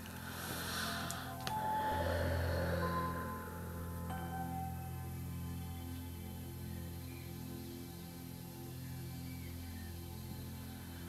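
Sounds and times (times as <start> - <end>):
meditative music of low tones: 0.0 - 11.0
deep breath: 0.1 - 4.7.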